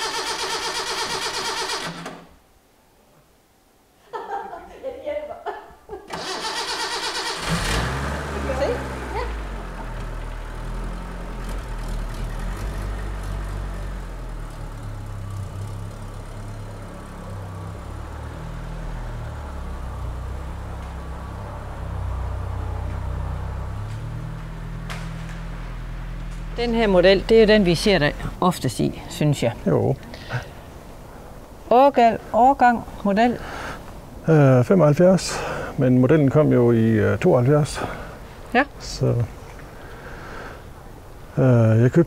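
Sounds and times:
car engine idling: 0.0 - 2.0, 6.2 - 31.6
starter cranking engine: 0.0 - 2.2, 6.1 - 8.7.

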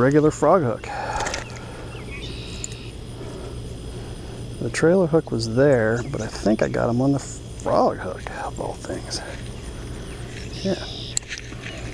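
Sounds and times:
high insect trill: 0.0 - 11.9
steady low rumble: 0.0 - 11.9.

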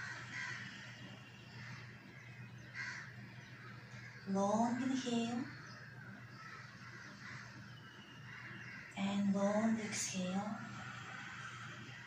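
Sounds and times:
bird harsh calls: 0.0 - 9.0
steady low hum: 0.0 - 12.0.

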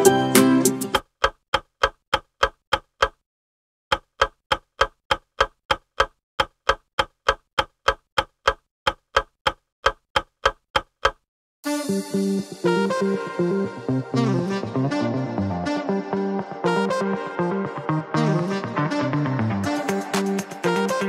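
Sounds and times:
clock ticking: 0.9 - 3.2, 3.9 - 11.3.

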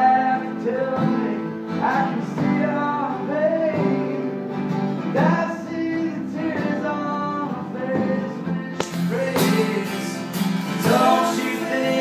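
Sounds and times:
acoustic guitars strummed: 0.0 - 12.0
man singing: 0.0 - 12.0.

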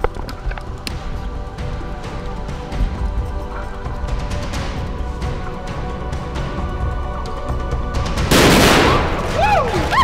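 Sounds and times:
loud explosion blast: 8.3 - 9.4
people whooping: 8.9 - 10.0.

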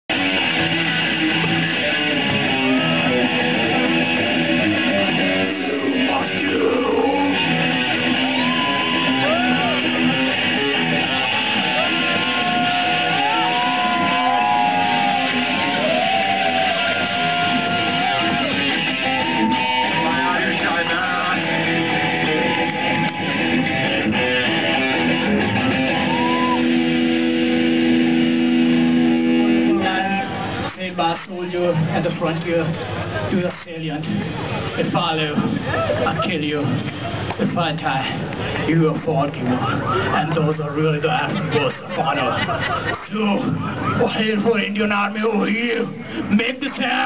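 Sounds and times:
rock band playing: 0.1 - 30.7
sliding lead guitar line: 0.1 - 30.7.

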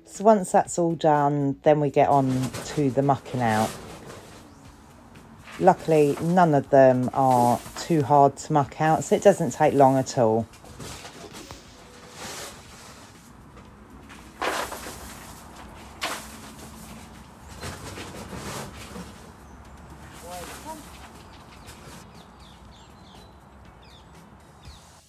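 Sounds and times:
broom sweeping concrete floor: 7.2 - 7.9, 10.7 - 13.4, 14.1 - 19.1, 20.0 - 22.0.

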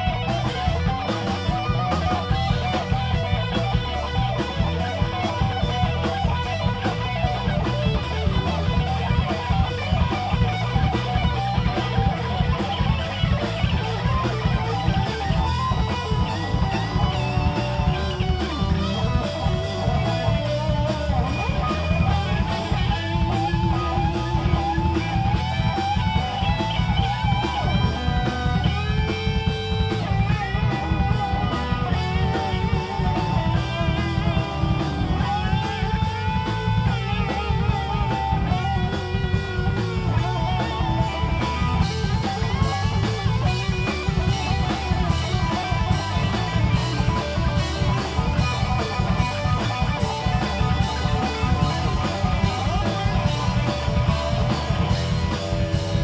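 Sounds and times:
bass guitar: 0.0 - 56.0
drums: 0.0 - 56.0
electric guitar lead: 0.0 - 56.0.

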